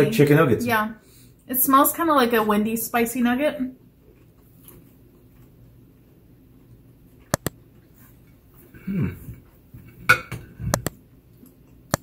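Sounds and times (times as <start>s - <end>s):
sharp clicks: 7.3s - 7.6s.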